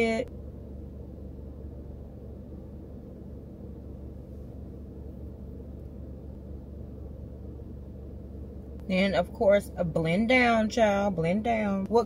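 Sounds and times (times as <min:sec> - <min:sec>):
car cabin rumble and hum: 0:00.0 - 0:12.0.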